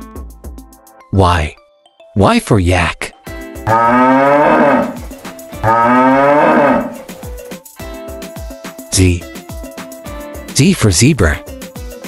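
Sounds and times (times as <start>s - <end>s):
light background music: 0.0s - 12.0s
cow mooing: 3.7s - 7.1s.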